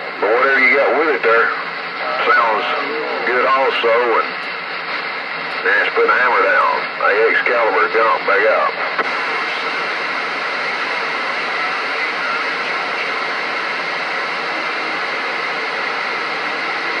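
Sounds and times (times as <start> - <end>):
radio static hiss: 0.0 - 17.0.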